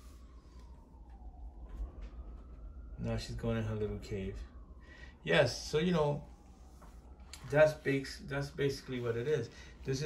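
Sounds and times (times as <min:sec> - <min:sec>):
faint siren wail: 0:00.0 - 0:10.0
low steady hum: 0:00.0 - 0:10.0.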